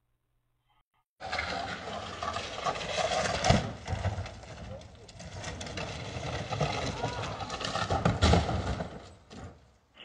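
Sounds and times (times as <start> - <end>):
thump: 7.9 - 9.6.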